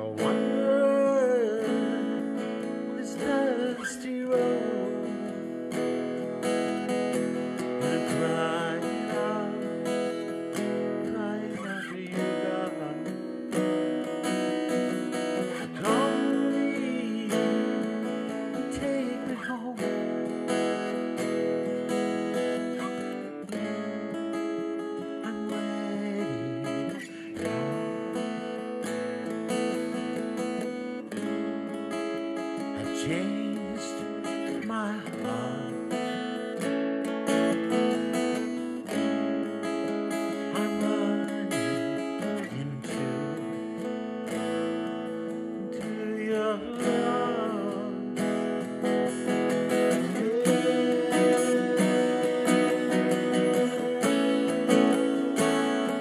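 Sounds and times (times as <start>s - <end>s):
man singing: 0.0s - 30.0s, 32.6s - 56.0s
acoustic guitar strumming: 0.0s - 56.0s.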